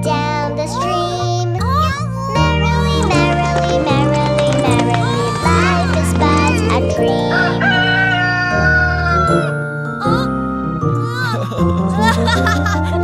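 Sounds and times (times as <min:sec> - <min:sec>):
children's song music: 0:00.0 - 0:13.0
rooster crowing: 0:07.2 - 0:09.5.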